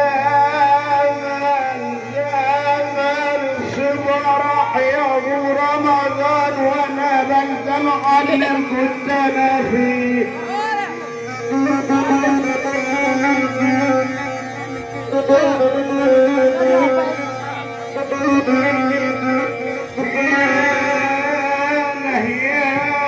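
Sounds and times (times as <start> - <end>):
amplified folk music with drones: 0.0 - 23.0.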